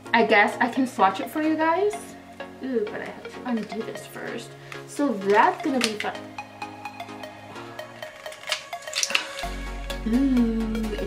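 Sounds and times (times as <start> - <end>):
background music with steady beat: 0.0 - 11.0
packaging rustling and clicking: 4.7 - 6.2, 7.8 - 9.6.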